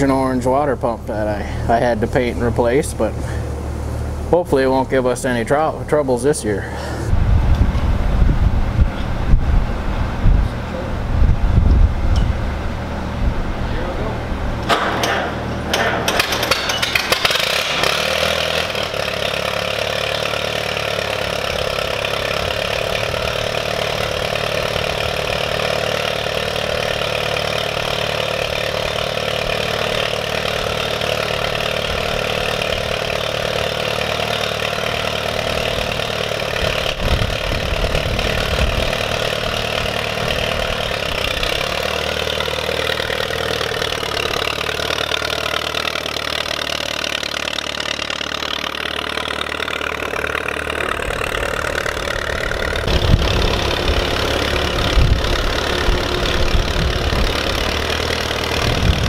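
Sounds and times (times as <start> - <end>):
tractor engine starting and idling: 0.0 - 59.0.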